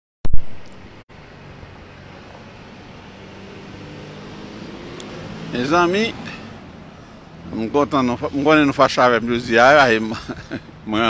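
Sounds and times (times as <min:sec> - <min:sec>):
vehicles passing: 0:00.6 - 0:11.0.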